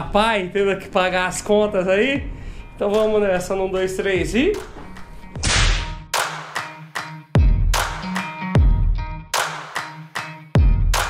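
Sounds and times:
sharp whip-like crack: 0:05.4 - 0:06.7.

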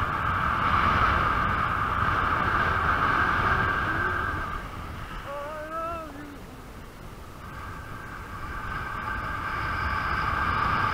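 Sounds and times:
hydrofoil high-pitched whine: 0:00.0 - 0:10.9
wind rumble on microphone: 0:00.0 - 0:10.9.

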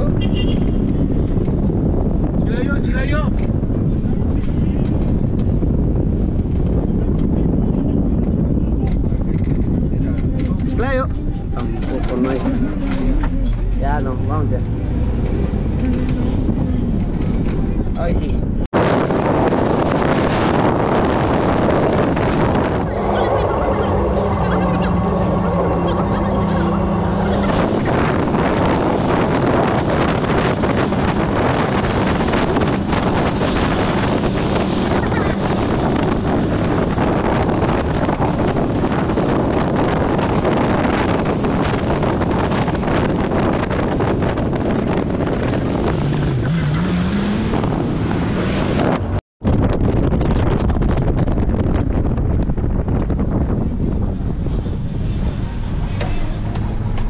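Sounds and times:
road and engine noise: 0:00.0 - 0:57.0
wind buffeting microphone: 0:00.0 - 0:57.0.

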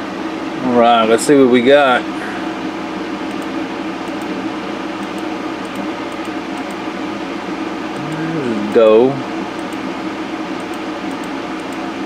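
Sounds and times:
mechanical hum with hiss: 0:00.0 - 0:12.0.

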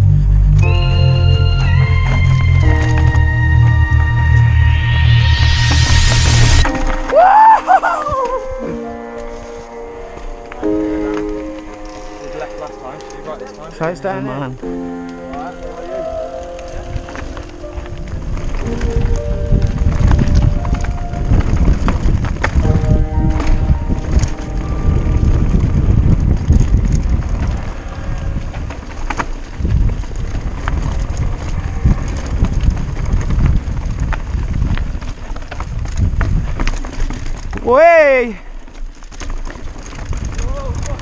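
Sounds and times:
wind rumbling on microphone: 0:00.0 - 0:08.8, 0:16.0 - 0:37.8, 0:38.4 - 0:41.0
bike knocking and rattling over stones: 0:16.7 - 0:41.0.

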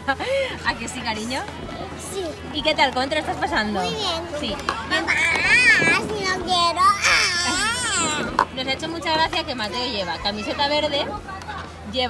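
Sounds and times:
young child vocalising near crying: 0:05.0 - 0:08.4.

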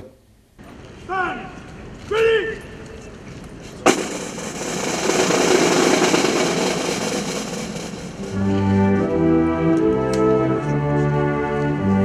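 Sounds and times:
side drums rolling: 0:03.8 - 0:09.2.

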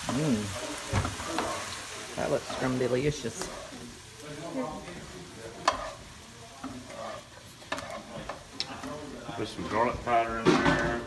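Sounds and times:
vegetables and bacon sizzling: 0:00.0 - 0:11.0.

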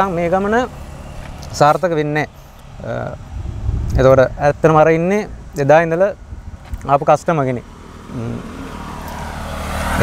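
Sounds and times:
vehicle approaching on road: 0:00.0 - 0:10.0.

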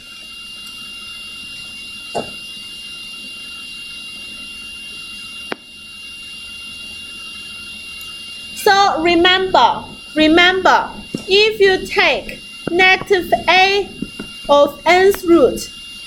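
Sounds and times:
high electronic whine: 0:00.0 - 0:16.0.

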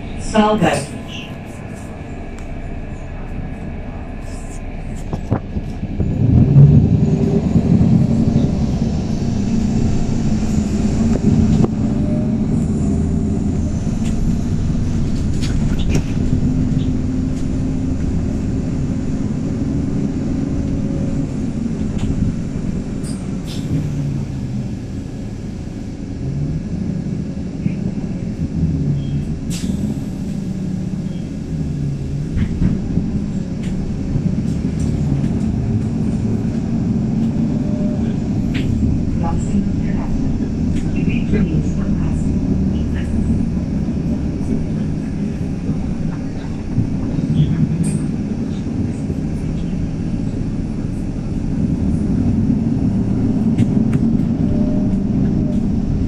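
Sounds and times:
bus engine running: 0:00.0 - 0:56.0.

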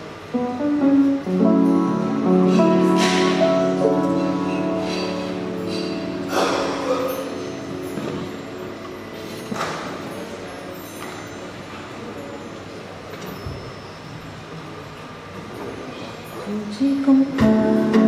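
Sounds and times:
acoustic guitar playing: 0:00.3 - 0:09.6, 0:17.1 - 0:18.0
faint voices: 0:02.6 - 0:18.0.

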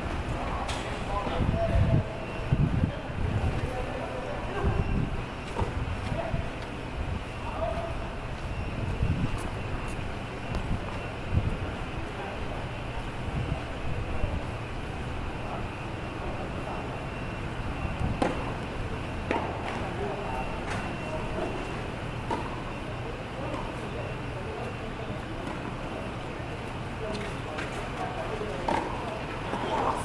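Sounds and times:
faint voices: 0:10.6 - 0:30.0
tennis balls struck by rackets: 0:28.6 - 0:29.1.

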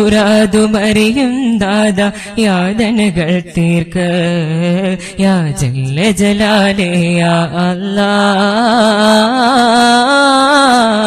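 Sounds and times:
person singing devotional song: 0:00.0 - 0:11.0.

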